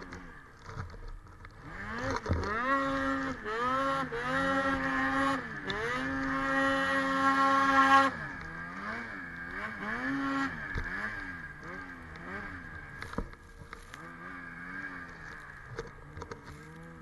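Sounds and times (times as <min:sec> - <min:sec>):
snowmobile engine revving: 0:01.6 - 0:17.0.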